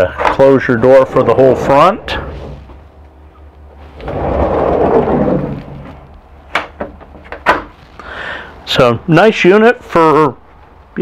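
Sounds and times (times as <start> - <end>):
wooden door rumbling: 4.0 - 7.7.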